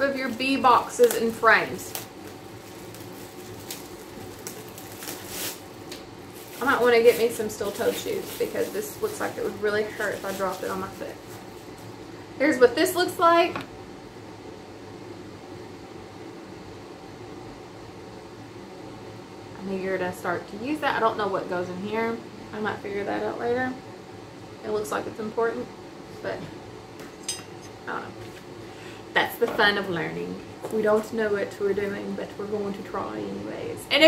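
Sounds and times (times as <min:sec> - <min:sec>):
plastic bag crinkling: 0:00.0 - 0:11.9
steady low hum and hiss: 0:00.0 - 0:34.0.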